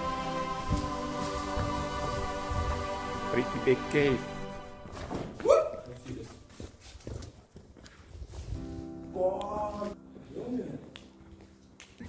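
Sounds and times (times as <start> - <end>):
footsteps on a dirt path: 5.2 - 8.8.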